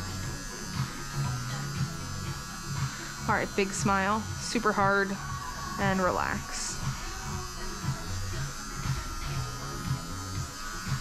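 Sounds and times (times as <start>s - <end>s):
low electrical buzz and hum: 0.0s - 11.0s.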